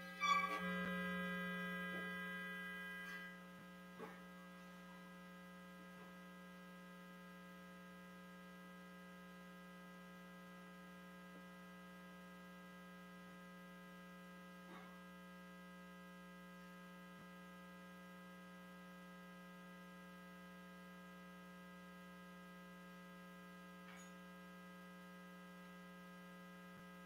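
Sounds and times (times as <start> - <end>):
bright buzzing tone: 0.0 - 3.6
electrical mains hum: 0.0 - 27.0.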